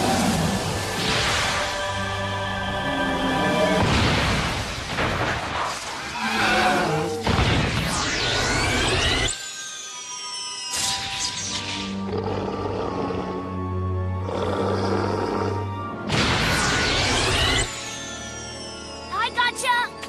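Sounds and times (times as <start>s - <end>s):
dinosaur roar: 6.2s - 7.2s, 12.0s - 15.7s
cartoon background music: 6.4s - 20.0s
loud rush with glittering chimes: 8.3s - 11.7s.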